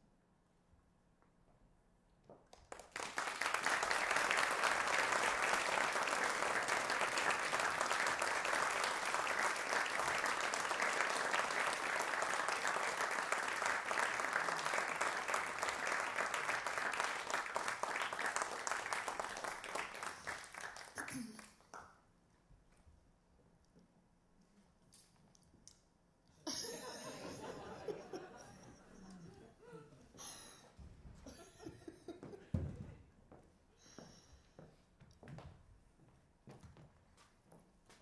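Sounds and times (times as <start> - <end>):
audience clapping: 2.4 - 22.0.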